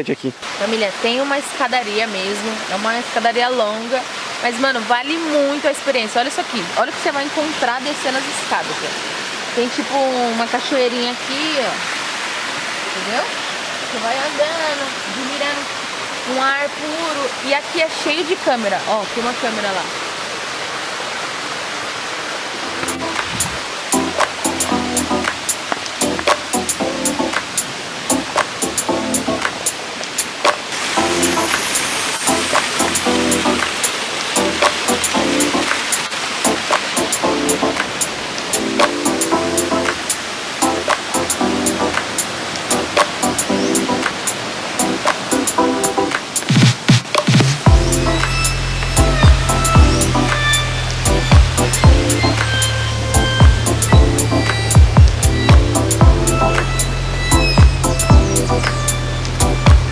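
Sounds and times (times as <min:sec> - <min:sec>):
background music with drum beat: 0:22.8 - 0:59.9
sliding bass hits: 0:47.6 - 0:50.4, 0:51.1 - 0:52.5, 0:53.1 - 0:56.6, 0:59.4 - 0:59.9.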